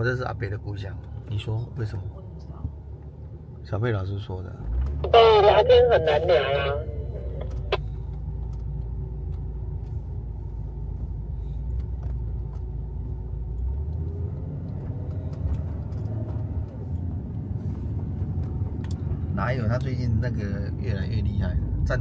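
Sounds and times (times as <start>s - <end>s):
van engine and road rumble: 0.0s - 22.0s.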